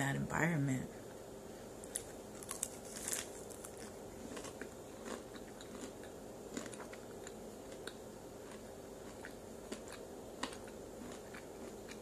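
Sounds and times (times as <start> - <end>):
crunchy chewing: 1.0 - 12.0.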